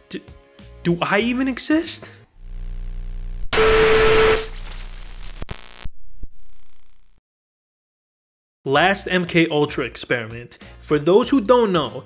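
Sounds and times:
steady whining tone: 0:02.4 - 0:04.7
crackly noise: 0:02.4 - 0:07.2
loud burst of static: 0:02.4 - 0:07.2
low electrical buzz: 0:02.4 - 0:07.2.

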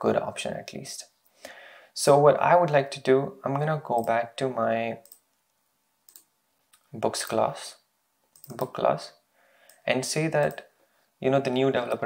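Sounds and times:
computer mouse clicks: 0:05.0 - 0:05.2, 0:06.1 - 0:06.9, 0:08.3 - 0:08.7.

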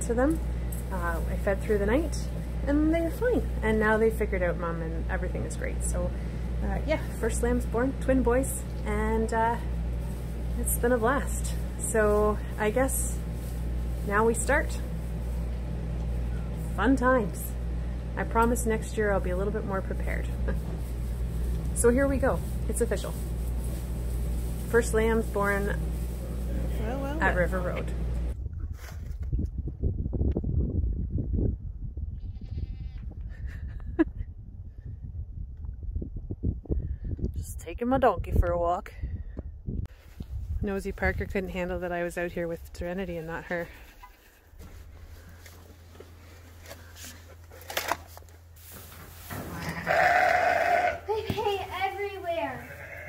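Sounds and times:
low rumbling and rustling: 0:00.0 - 0:53.0
faint bleat-like animal call: 0:32.2 - 0:33.0, 0:49.7 - 0:51.0, 0:52.5 - 0:53.0.

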